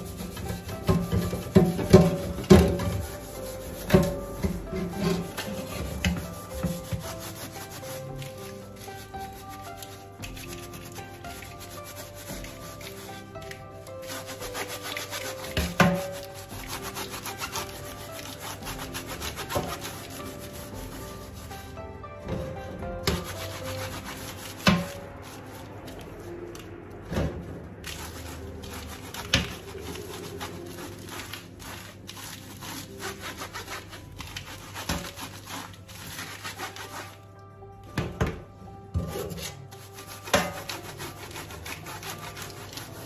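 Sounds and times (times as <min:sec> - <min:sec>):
sponge scrubbing metal filter: 0:00.0 - 0:37.4, 0:39.0 - 0:43.0
metal frame knocking on sink: 0:00.3 - 0:03.1.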